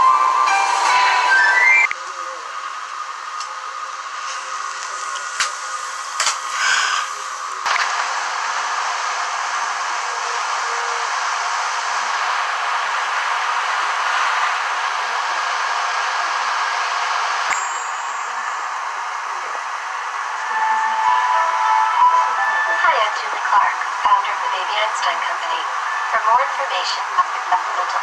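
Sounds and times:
soundtrack tones: 0.0 - 2.0, 20.3 - 26.4
tape static hiss: 0.0 - 28.0.

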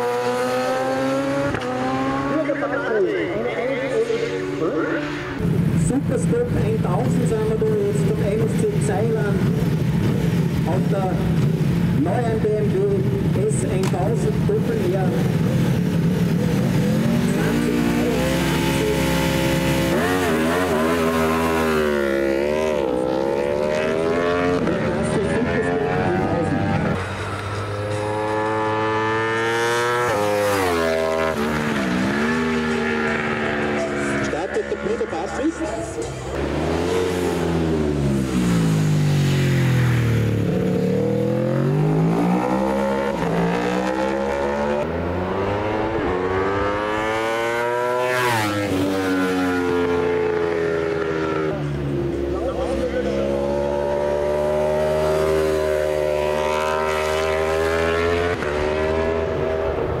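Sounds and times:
racing motorcycles shifting gears: 0.0 - 6.0, 6.6 - 60.0.

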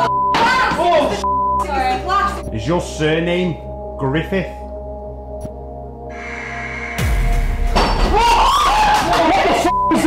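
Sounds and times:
tense background music: 1.0 - 10.0
people crying out in alarm: 8.0 - 10.0.

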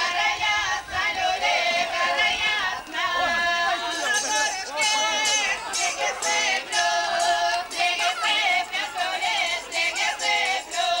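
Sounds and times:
group of voices singing: 0.0 - 11.0.

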